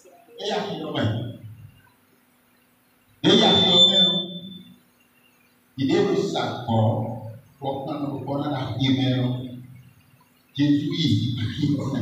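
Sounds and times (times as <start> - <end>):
faint low hum: 0.0 - 12.0
man speaking into a microphone: 0.4 - 1.4, 3.2 - 4.4, 5.8 - 9.6, 10.6 - 12.0
thin high ringing tone: 3.2 - 6.1.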